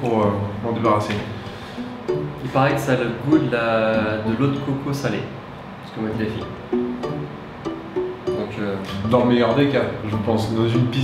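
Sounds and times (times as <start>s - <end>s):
plucked string instrument: 0.0s - 5.0s, 6.1s - 11.0s.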